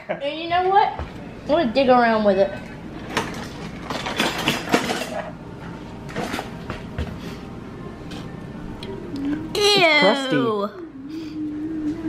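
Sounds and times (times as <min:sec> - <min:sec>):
metal cutlery clinking: 0:03.1 - 0:05.3.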